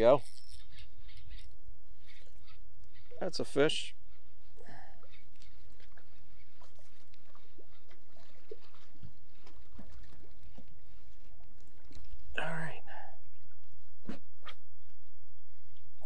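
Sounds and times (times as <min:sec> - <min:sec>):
fishing reel ticks: 0:00.0 - 0:03.2
small splashes: 0:05.4 - 0:12.3.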